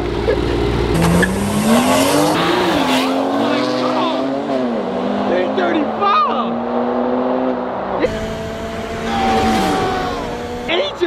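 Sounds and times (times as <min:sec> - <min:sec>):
car engines accelerating hard: 0:00.0 - 0:11.0.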